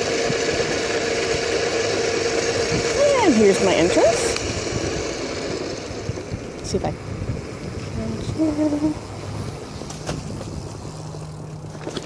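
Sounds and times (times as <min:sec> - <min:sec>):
electric motor whine: 0:00.0 - 0:12.0
road rumble: 0:00.0 - 0:12.0
wind buffeting microphone: 0:00.0 - 0:12.0.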